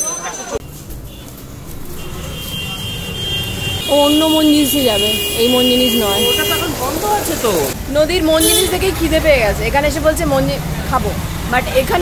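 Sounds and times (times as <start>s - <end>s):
street traffic: 0.0s - 12.0s
people talking: 3.8s - 12.0s.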